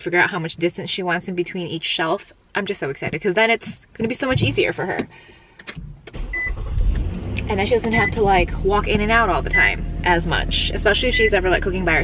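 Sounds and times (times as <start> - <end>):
car engine rumble: 2.9 - 12.0
high beep: 6.3 - 6.6, 7.8 - 8.2, 9.4 - 9.8.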